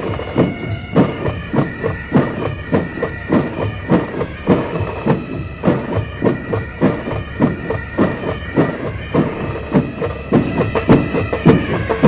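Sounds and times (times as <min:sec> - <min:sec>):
bass drum beating: 0:00.0 - 0:12.0
high pipe drone: 0:00.0 - 0:12.0
lighter drum strokes: 0:00.0 - 0:12.0.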